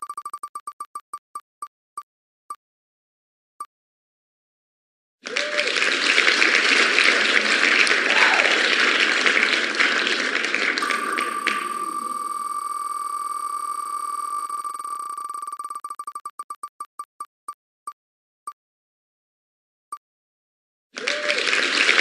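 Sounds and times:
cheering and applause: 0:05.2 - 0:12.4, 0:21.0 - 0:22.0.

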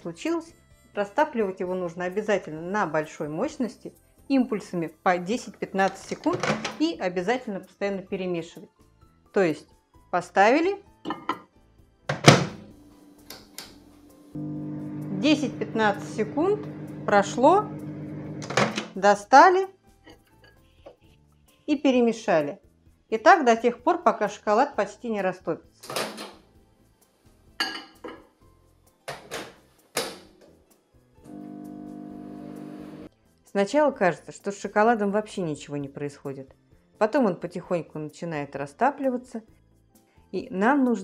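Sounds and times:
microwave door thunk: 0:12.1 - 0:12.6
microwave door shutting: 0:12.1 - 0:12.7, 0:18.3 - 0:18.9
microwave humming: 0:14.4 - 0:18.9, 0:31.3 - 0:33.1.

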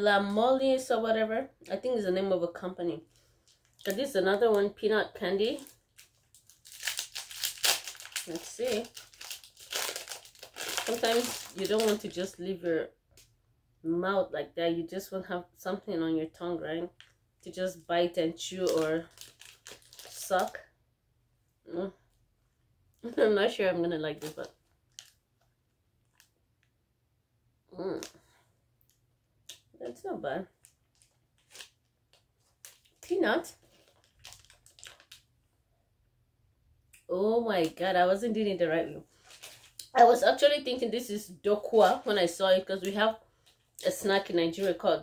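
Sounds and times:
snack wrapper crinkling: 0:03.2 - 0:04.0, 0:05.6 - 0:12.1, 0:18.6 - 0:20.5, 0:24.2 - 0:26.4, 0:30.6 - 0:33.0, 0:33.6 - 0:35.3, 0:39.2 - 0:39.9
plastic bag rustling: 0:05.4 - 0:12.2, 0:18.5 - 0:20.6, 0:32.4 - 0:35.2, 0:39.1 - 0:39.8.

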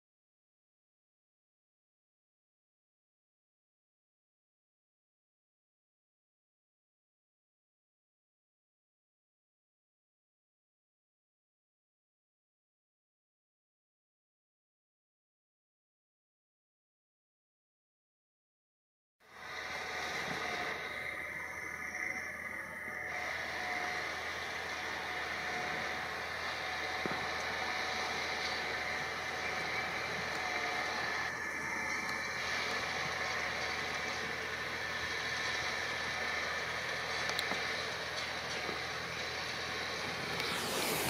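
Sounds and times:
tractor running under load: 0:19.3 - 0:41.0.

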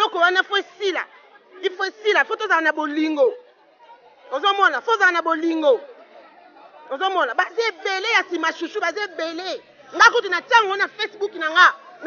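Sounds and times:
woman speaking into a microphone: 0:00.0 - 0:03.5, 0:04.3 - 0:05.9, 0:06.9 - 0:12.0
faint background chatter: 0:00.0 - 0:12.0.

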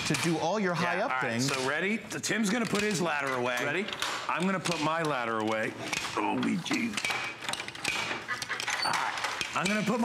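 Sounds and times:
ladder parts clicking and clanking: 0:01.4 - 0:10.0.

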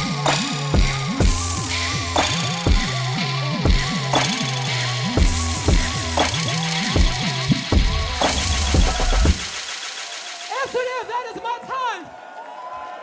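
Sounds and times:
electronic dance music: 0:00.0 - 0:12.1.

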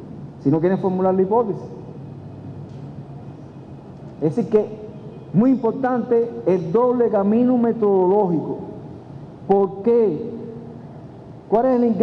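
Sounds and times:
low hum and hall room noise: 0:00.0 - 0:12.0.

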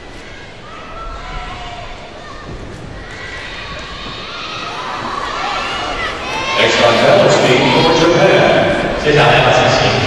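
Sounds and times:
crowd voices: 0:00.0 - 0:10.0
crowd cheering: 0:00.1 - 0:10.0.

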